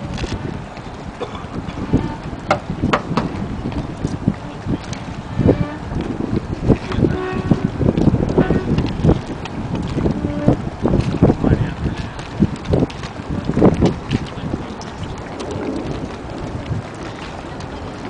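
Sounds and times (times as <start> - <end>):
low rumble: 0.0 - 18.0
wind buffeting microphone: 0.0 - 18.0.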